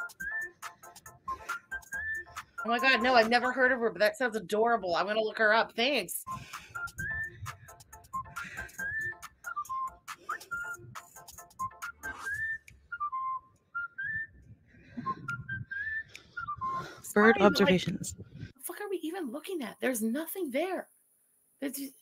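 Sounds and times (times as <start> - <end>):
person whistling a tune: 0.0 - 3.0, 6.3 - 17.7.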